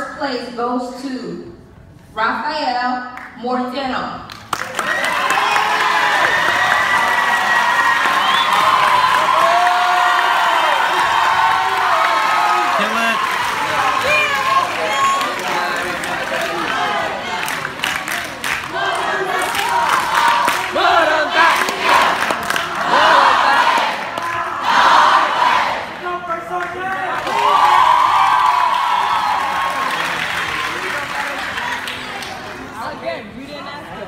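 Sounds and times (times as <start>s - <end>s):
crowd cheering and shouting: 4.8s - 17.9s, 26.8s - 30.9s.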